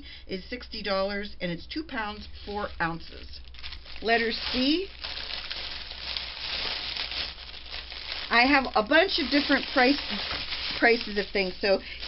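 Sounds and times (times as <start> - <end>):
cellophane bag crinkling: 2.7 - 12.0.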